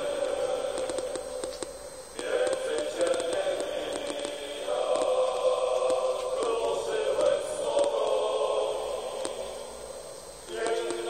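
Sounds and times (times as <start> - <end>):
choir singing long notes: 0.0 - 1.4, 2.2 - 9.8, 10.5 - 11.0.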